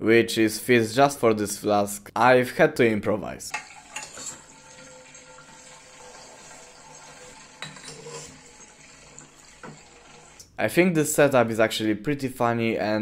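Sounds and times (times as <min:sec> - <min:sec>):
glassware clinking: 0:03.5 - 0:04.7, 0:07.5 - 0:08.5.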